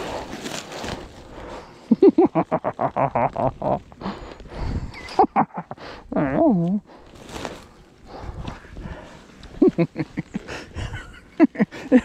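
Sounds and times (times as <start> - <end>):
foil sled and clothing rustling: 0.0 - 12.0.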